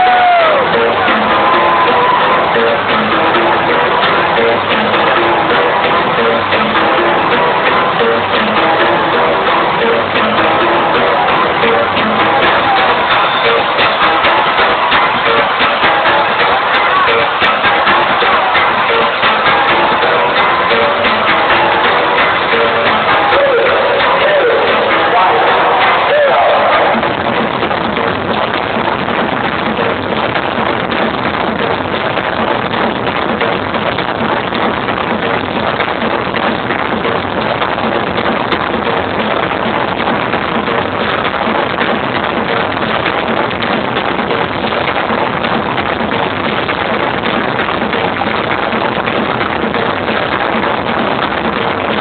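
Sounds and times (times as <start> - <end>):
arena crowd: 0.0 - 36.4
loud electronic dance music: 0.0 - 52.0.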